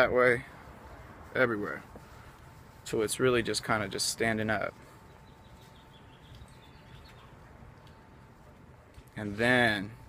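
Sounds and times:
faint bird chirps: 4.9 - 8.2.

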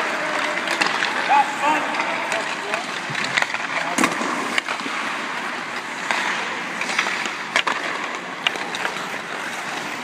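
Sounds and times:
skates scraping ice: 0.0 - 10.0
sticks and pucks clacking: 0.0 - 10.0.

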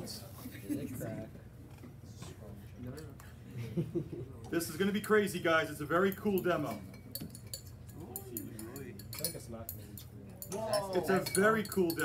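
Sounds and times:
glassware clinking: 6.0 - 12.0.

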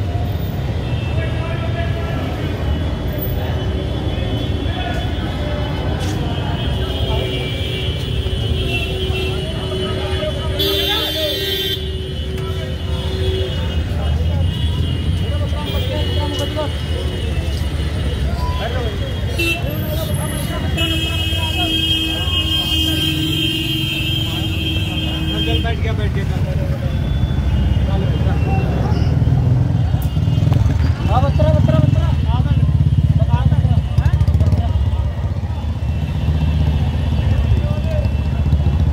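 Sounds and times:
traffic rumble: 0.0 - 38.9
people talking: 1.1 - 8.1, 9.0 - 23.5, 24.2 - 35.8, 36.7 - 38.9.

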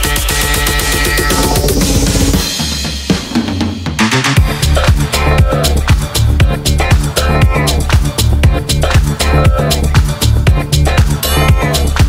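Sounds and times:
electronic music with drums and bass: 0.0 - 12.0.

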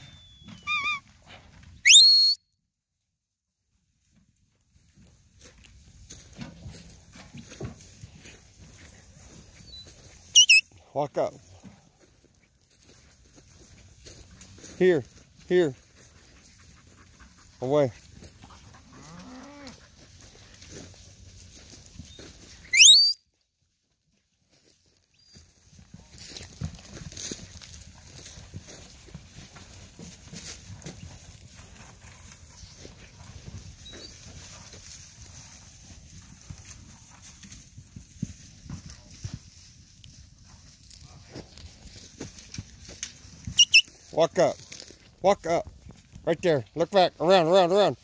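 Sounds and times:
hooves scuffling over dirt: 0.0 - 1.8, 3.8 - 48.0
short rising whistle: 1.8 - 2.4, 10.4 - 10.6, 22.7 - 23.2.

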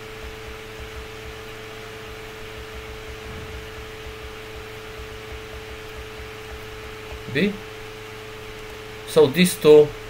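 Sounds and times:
mid-pitched hum: 0.0 - 10.0.

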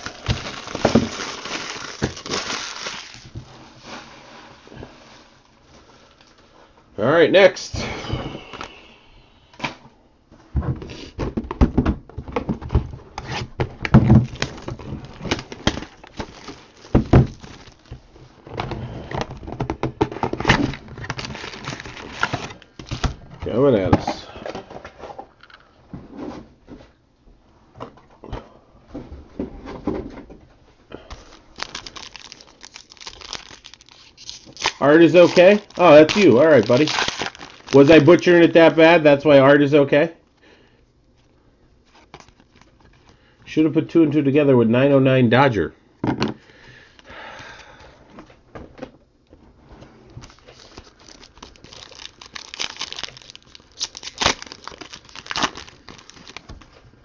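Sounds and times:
wrappers crinkling and tearing: 0.0 - 3.4, 14.1 - 18.0, 20.4 - 23.2, 31.1 - 38.8, 41.8 - 43.1, 50.2 - 56.8.

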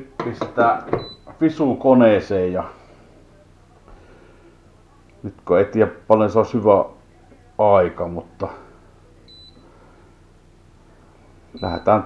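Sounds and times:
high electronic beep: 9.3 - 9.6, 11.6 - 11.9.

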